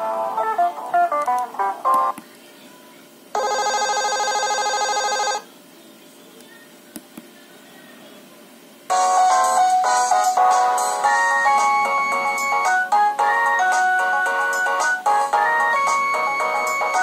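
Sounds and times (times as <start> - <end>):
phone ringtone melody: 3.4 - 5.4, 8.9 - 17.0
buzzy electronic ringtone: 3.4 - 5.5, 8.9 - 17.0.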